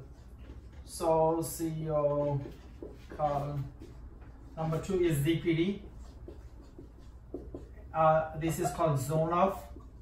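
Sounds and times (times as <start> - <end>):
marker scratching on whiteboard: 0.0 - 10.0.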